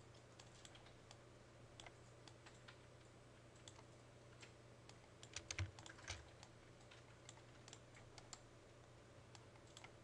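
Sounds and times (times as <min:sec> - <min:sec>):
keyboard and mouse clicking: 0:03.6 - 0:08.4, 0:09.3 - 0:10.0.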